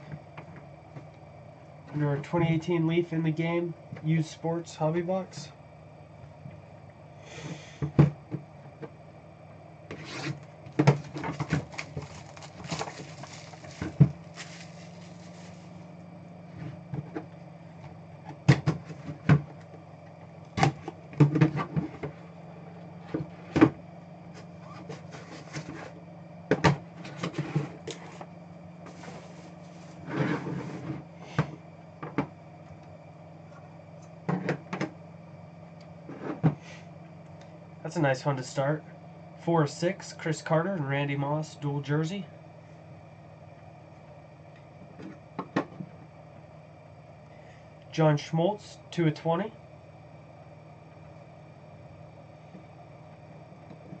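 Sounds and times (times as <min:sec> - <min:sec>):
steady low hum: 0:00.0 - 0:54.0
plastic shrink-wrap rustling: 0:11.4 - 0:15.7.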